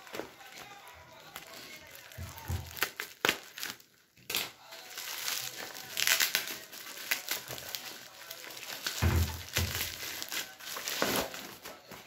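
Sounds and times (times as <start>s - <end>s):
bubble wrap crackling: 0.0s - 12.0s.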